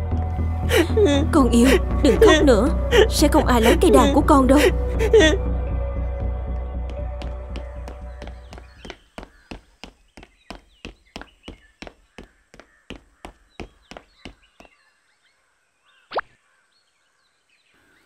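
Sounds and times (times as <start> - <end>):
music: 0.0 - 8.7
quick running footsteps: 6.5 - 14.8.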